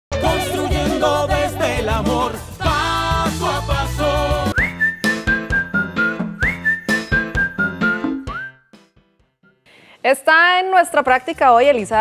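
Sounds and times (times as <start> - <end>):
steady beat: 0.2 - 8.3
whistled melody: 4.3 - 9.6.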